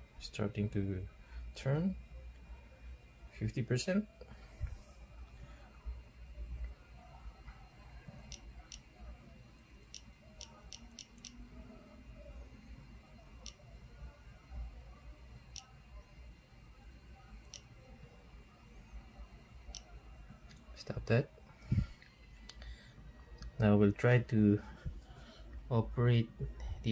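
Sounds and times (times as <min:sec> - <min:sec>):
low even hum: 0:00.0 - 0:26.9.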